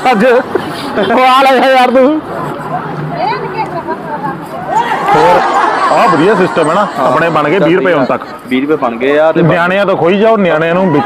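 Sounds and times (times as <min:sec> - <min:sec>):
men talking: 0:00.0 - 0:03.1, 0:03.8 - 0:11.0.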